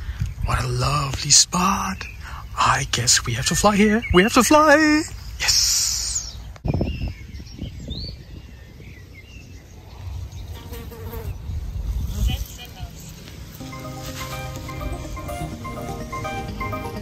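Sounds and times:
wind buffeting microphone: 6.3s - 10.5s, 11.3s - 13.2s
music with held notes: 13.6s - 17.0s.

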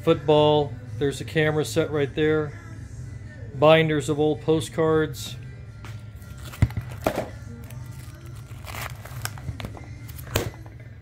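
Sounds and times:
quiet background music: 0.0s - 11.0s
plastic sleeves rustling: 6.2s - 10.5s.

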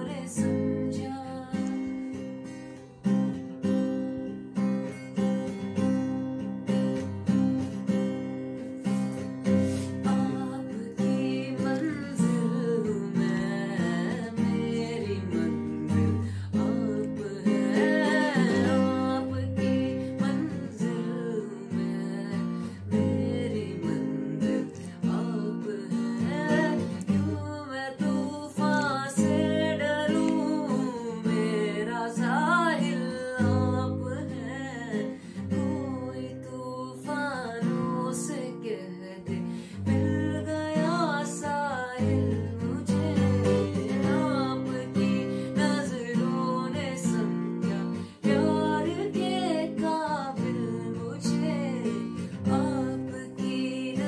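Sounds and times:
acoustic guitar strumming: 37.6s - 54.0s.

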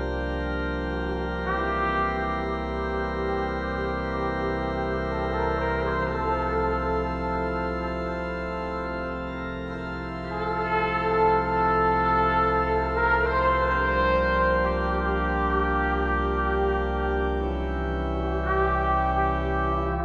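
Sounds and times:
low drone and sustained chords: 0.0s - 20.0s
trombone and trumpet lines: 0.0s - 20.0s.

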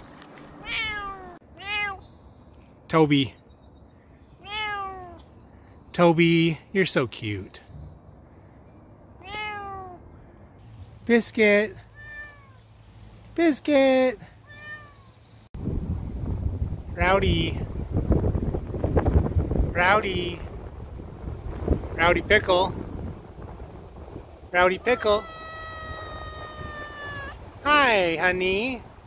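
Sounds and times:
cat meowing: 0.6s - 2.0s, 4.4s - 5.2s, 9.2s - 10.0s, 11.8s - 12.6s, 14.4s - 15.2s, 24.8s - 27.5s
wind rumbling on microphone: 15.6s - 29.0s.

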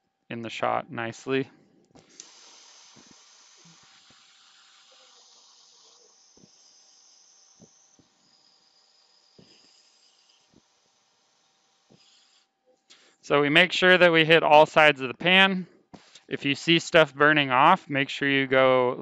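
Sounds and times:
propane torch hissing: 2.0s - 12.5s.

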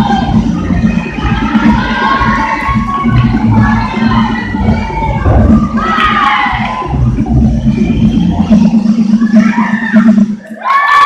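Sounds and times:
spectators cheering and whooping: 0.0s - 11.0s.

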